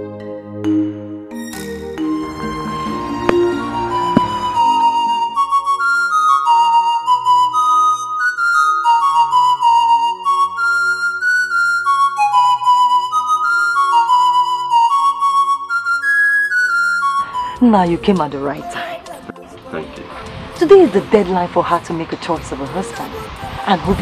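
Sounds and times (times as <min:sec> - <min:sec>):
flute melody: 0:00.6 - 0:20.7
soft low accompaniment: 0:02.0 - 0:05.6.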